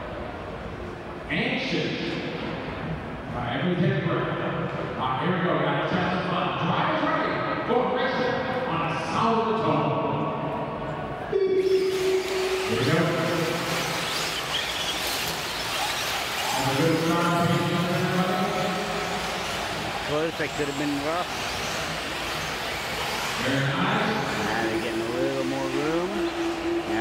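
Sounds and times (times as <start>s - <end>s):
arena background noise: 0.0s - 27.0s
announcer over public address: 23.5s - 27.0s.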